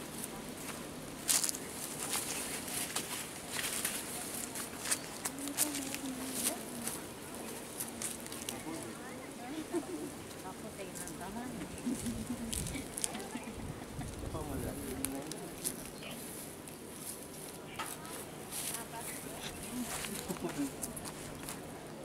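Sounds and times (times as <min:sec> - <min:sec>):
low voices talking: 0:04.0 - 0:16.4, 0:17.1 - 0:22.0.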